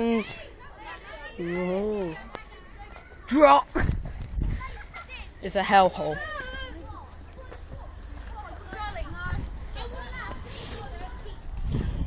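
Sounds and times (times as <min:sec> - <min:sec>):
children chattering and calling: 0:00.0 - 0:12.0
low rumble on microphone: 0:11.3 - 0:12.0.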